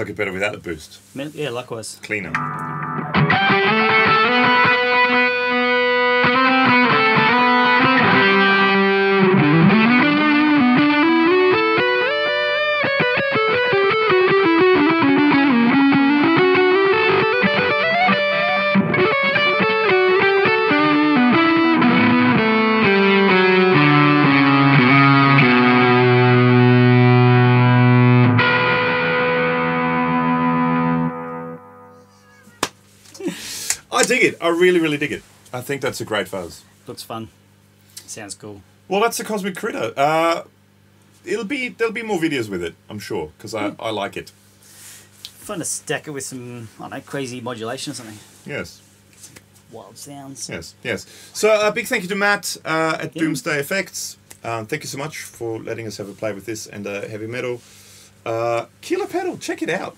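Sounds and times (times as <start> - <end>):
distorted electric guitar: 2.3 - 32.6.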